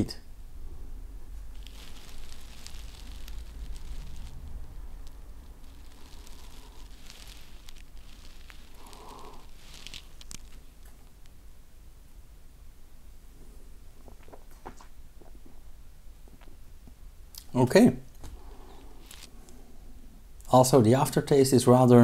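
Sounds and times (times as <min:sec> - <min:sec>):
low steady hum: 0:00.0 - 0:22.0
man sipping beer: 0:08.6 - 0:10.2.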